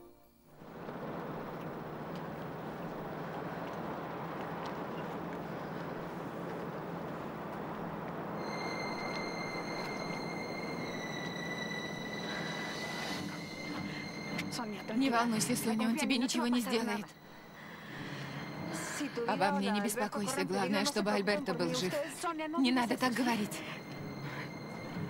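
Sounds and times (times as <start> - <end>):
low hum: 0.3 - 21.8, 22.7 - 25.0
rushing background noise: 0.5 - 25.0
high whistle-like tone: 8.3 - 14.5.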